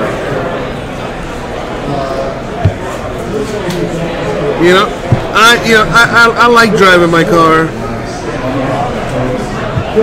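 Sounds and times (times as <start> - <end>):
faint background voices: 0.0 - 10.0
handling noise: 2.6 - 3.8, 4.9 - 5.7
dull thump: 5.1 - 5.4.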